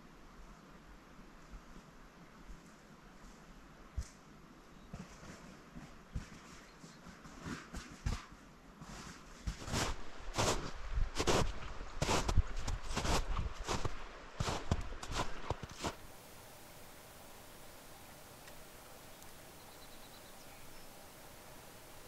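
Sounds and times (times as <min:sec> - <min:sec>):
boot footsteps crunching on snow: 0:06.2 - 0:16.1.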